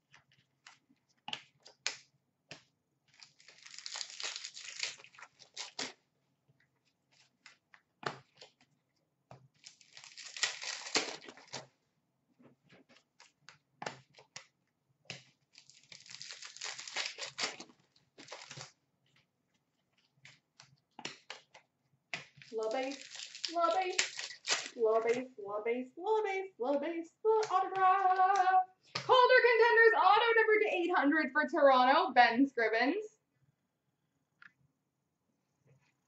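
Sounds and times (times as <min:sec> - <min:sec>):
wrappers torn and crinkled: 0:03.1 - 0:06.0, 0:09.6 - 0:11.7, 0:15.2 - 0:18.8, 0:22.2 - 0:25.3.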